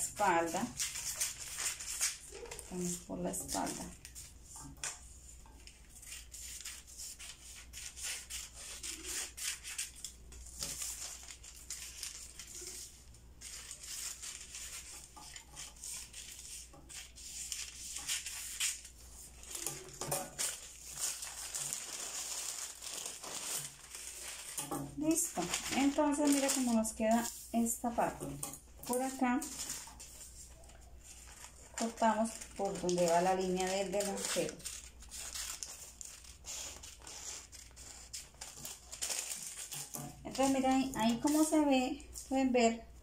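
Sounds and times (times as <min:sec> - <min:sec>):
paper rustling and crinkling: 0:00.0 - 0:42.4
scissors snipping paper: 0:05.7 - 0:27.3, 0:31.3 - 0:41.6.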